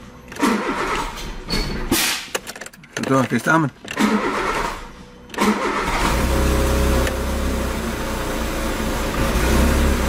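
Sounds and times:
starter motor cranking engine: 0:03.9 - 0:06.3.

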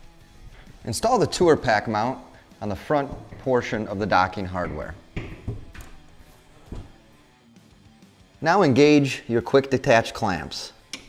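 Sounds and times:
soft knock: 0:04.7 - 0:05.9.

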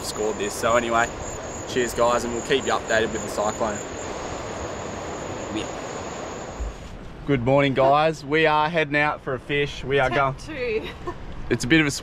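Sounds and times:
high-pitched insect drone: 0:00.0 - 0:06.7
surf washing: 0:00.0 - 0:08.6.

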